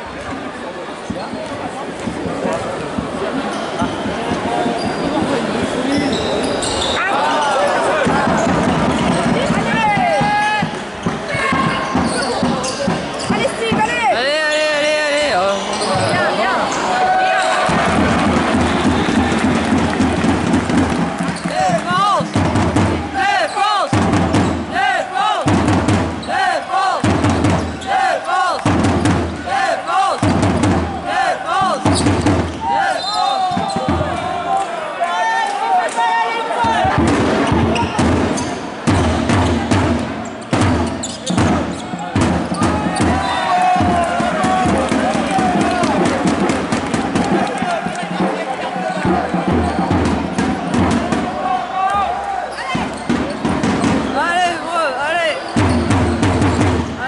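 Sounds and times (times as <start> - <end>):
voices in a hall: 0.0 - 57.0
basketball bouncing on court: 27.0 - 27.8, 52.8 - 54.2, 55.5 - 57.0.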